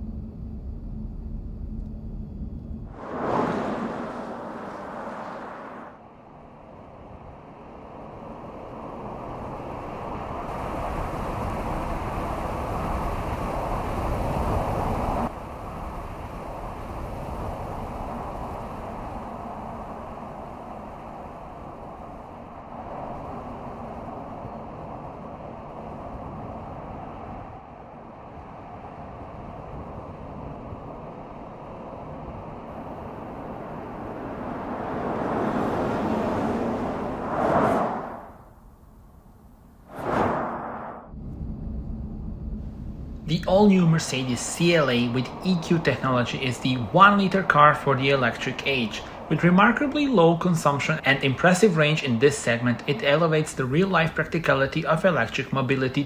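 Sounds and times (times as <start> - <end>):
car tyre and wind noise: 2.3 - 54.6
car passing close by: 2.9 - 6.2, 32.7 - 38.6, 39.9 - 41.1.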